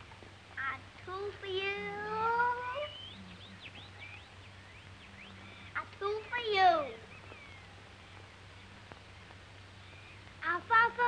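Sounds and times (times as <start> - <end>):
child's voice drawing out a word: 5.8 - 7.0.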